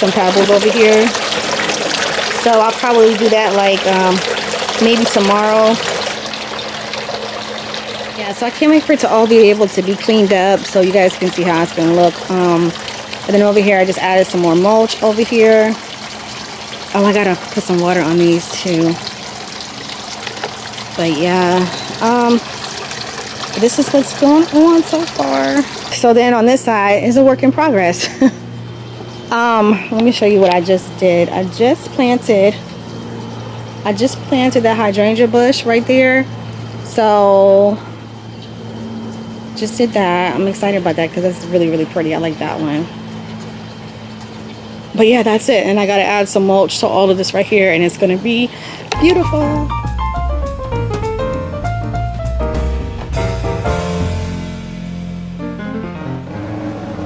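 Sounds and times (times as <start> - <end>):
fountain water running: 0.0 - 28.4, 29.3 - 49.7
steady low hum: 0.0 - 57.0.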